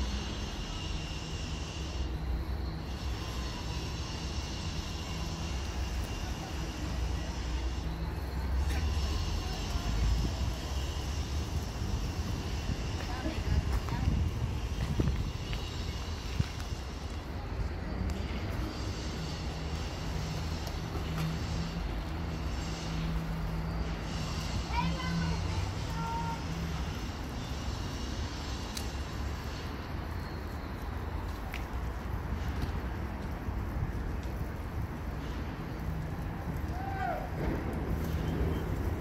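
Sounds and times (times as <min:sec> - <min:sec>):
low outdoor rumble: 0:00.0 - 0:39.0.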